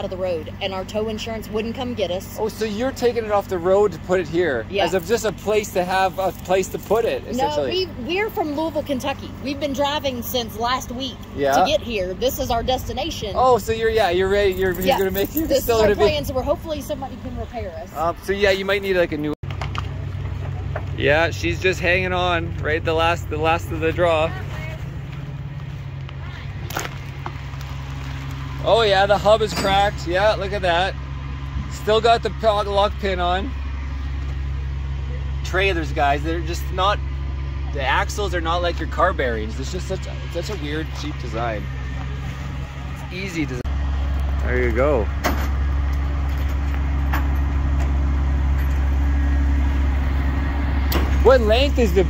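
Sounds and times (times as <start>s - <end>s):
diesel truck engine idling: 0.0s - 52.0s.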